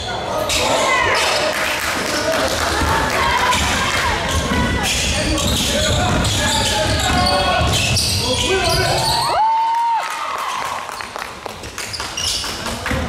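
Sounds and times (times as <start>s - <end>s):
people's voices: 0.0s - 9.4s
basketball bouncing on court: 2.8s - 8.2s.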